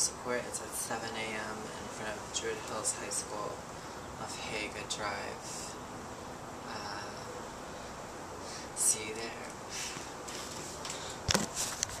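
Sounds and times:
short rustle: 0:09.7 - 0:12.0.

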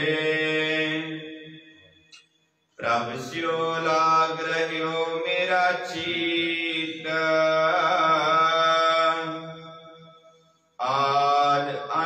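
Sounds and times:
hymn chanting: 0:00.0 - 0:01.4, 0:02.8 - 0:09.4.

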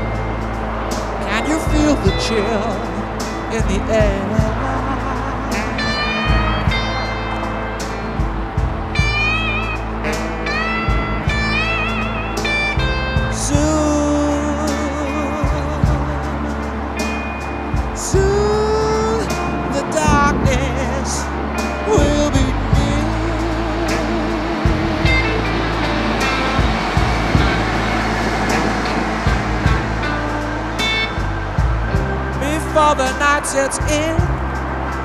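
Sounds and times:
band music with bass line: 0:00.0 - 0:35.0
gliding lead lines: 0:00.0 - 0:35.0.

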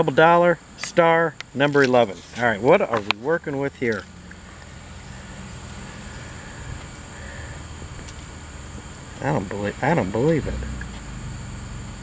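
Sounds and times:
high-pitched insect drone: 0:02.4 - 0:12.0.

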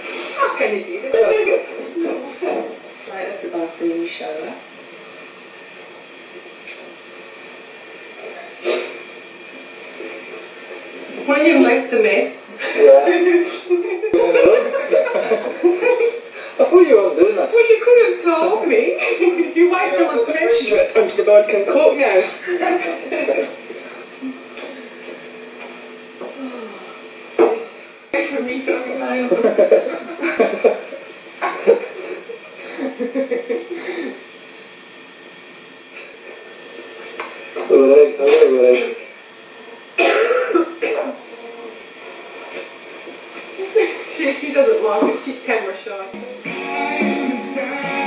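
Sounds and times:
steady hiss: 0:00.0 - 0:48.0
indistinct voices: 0:17.6 - 0:27.3.

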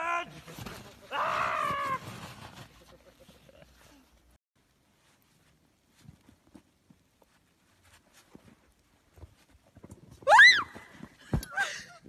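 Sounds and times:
person screaming: 0:01.1 - 0:02.0.

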